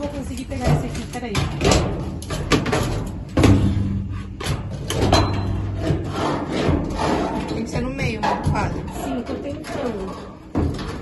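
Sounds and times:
pole knocking and scraping: 0.0s - 11.0s.

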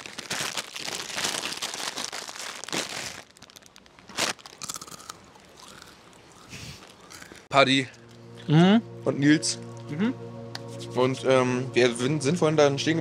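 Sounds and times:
plastic bag crinkling: 0.0s - 5.9s.

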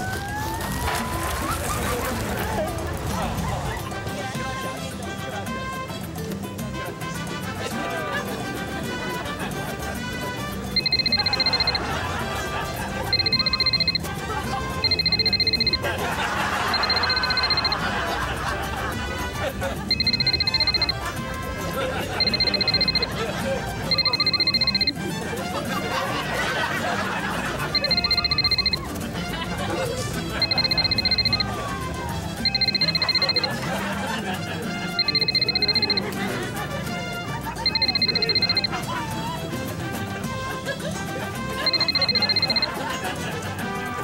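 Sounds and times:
background music: 0.0s - 44.0s
crowd chatter: 0.0s - 44.0s
mobile phone ringing: 9.0s - 40.4s, 41.2s - 44.0s.

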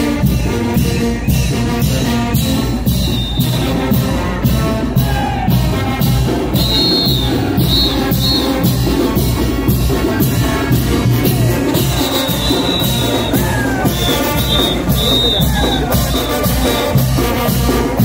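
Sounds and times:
brass band playing dance music: 0.0s - 18.0s.

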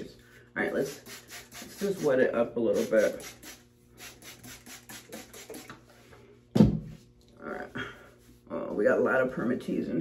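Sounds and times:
spray bottle squirting water: 0.8s - 2.1s, 2.7s - 5.8s.

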